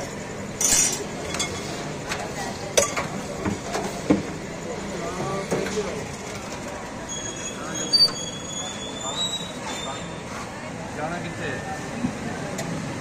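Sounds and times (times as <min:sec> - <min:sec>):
street noise: 0:00.0 - 0:13.0
thin high squeal: 0:07.0 - 0:10.3.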